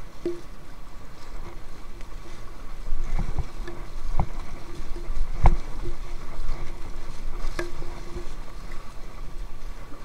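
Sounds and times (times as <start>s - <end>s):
low thumps: 0.0s - 0.8s.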